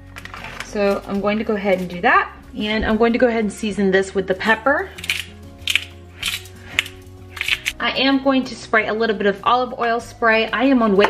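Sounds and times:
background music: 0.0 - 11.0
pepper grinder rasping: 5.0 - 7.8.

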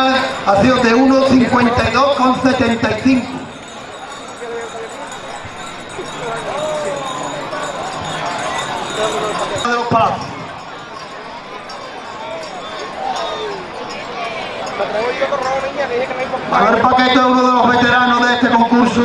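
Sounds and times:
crowd chatter: 0.0 - 19.0.

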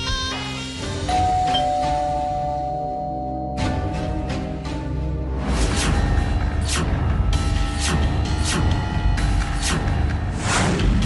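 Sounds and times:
two-note doorbell chime: 1.1 - 4.7.

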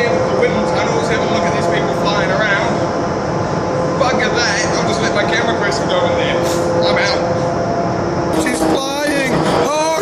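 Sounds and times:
wind tunnel air rush: 0.0 - 10.0
indistinct voices: 8.3 - 10.0.

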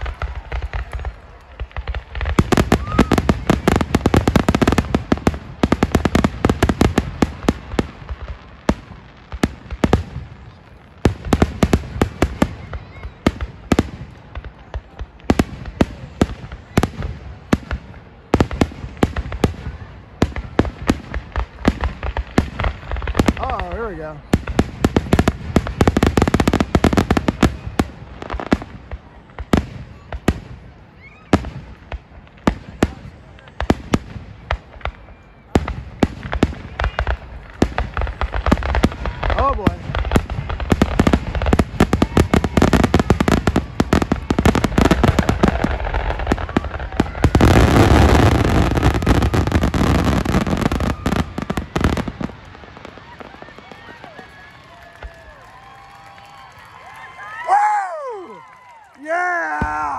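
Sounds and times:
fireworks booming and crackling: 0.0 - 59.9.

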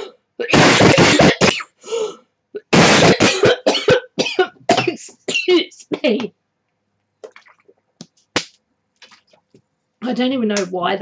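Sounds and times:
person swallowing gulps: 7.2 - 7.9.

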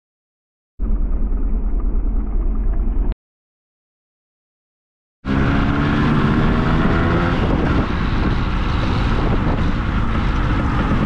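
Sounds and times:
motorcycle engine running: 0.8 - 3.2, 5.3 - 11.0
wind rushing over microphone: 5.3 - 11.0.

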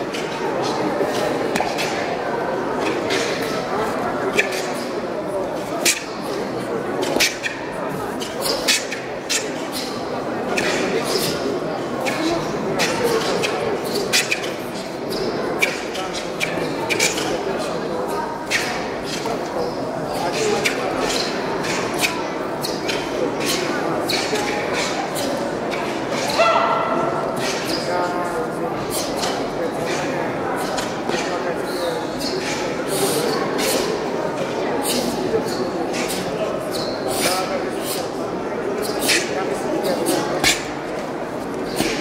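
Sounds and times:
murmur of voices echoing: 0.0 - 42.0.

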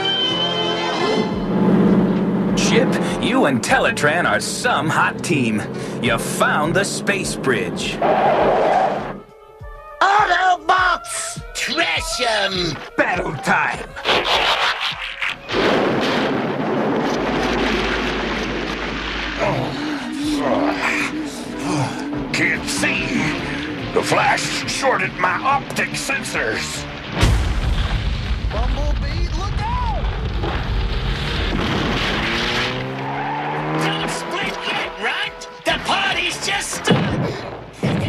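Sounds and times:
cartoon car engine revving: 0.8 - 9.2, 17.1 - 27.0, 30.4 - 37.4
explosive blast with low rumble: 15.5 - 20.1, 26.8 - 32.4.

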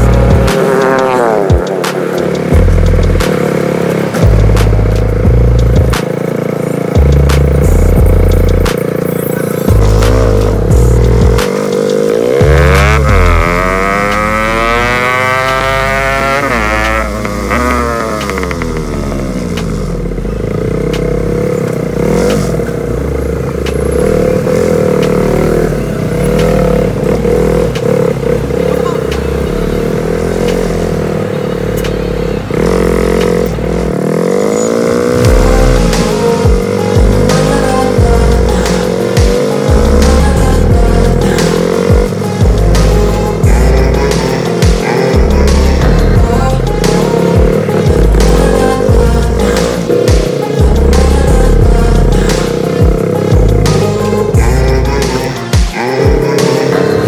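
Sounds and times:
motorcycle engine running: 0.0 - 57.0.

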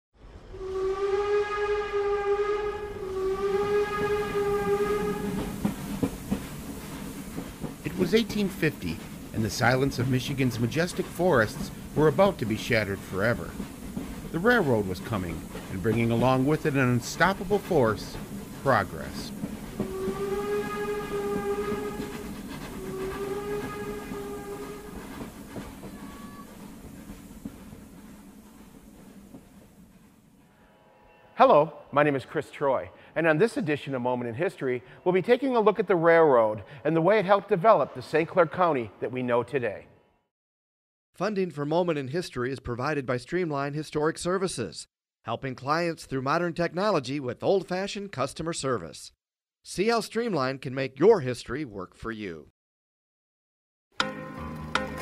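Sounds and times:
train rumbling on rails: 0.2 - 30.5
steam train whistle blasts: 0.5 - 5.8, 14.4 - 25.2, 25.8 - 26.7.

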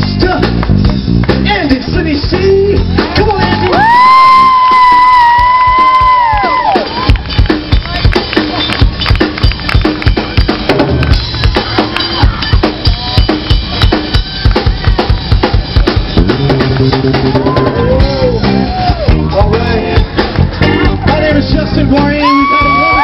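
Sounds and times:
drums playing steady beat: 0.0 - 23.0
live rock band playing: 0.0 - 23.0.

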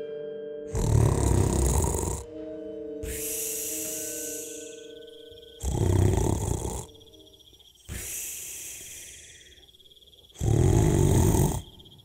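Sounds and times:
soft background music: 0.0 - 7.8
cartoon ghost yawning: 3.0 - 4.8, 5.6 - 6.9, 7.9 - 9.6.

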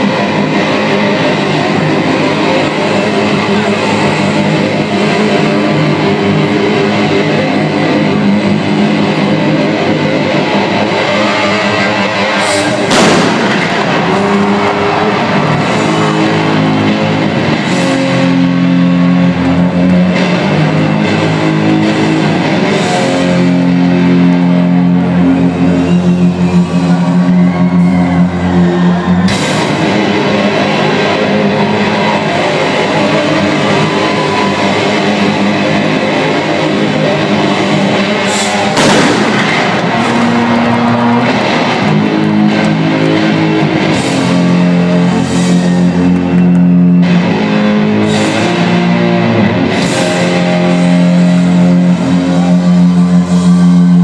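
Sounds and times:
loud live electric guitar: 0.0 - 54.0
loud crash: 12.5 - 16.8, 38.3 - 42.4.

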